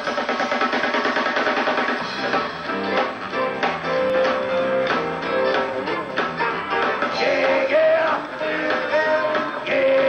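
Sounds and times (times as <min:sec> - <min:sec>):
drums: 0:00.0 - 0:10.0
electric guitars: 0:00.0 - 0:10.0.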